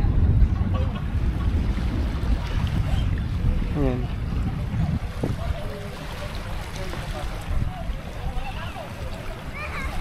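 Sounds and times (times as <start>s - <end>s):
wind buffeting microphone: 0.0s - 10.0s
waves washing on rocky shore: 1.0s - 10.0s.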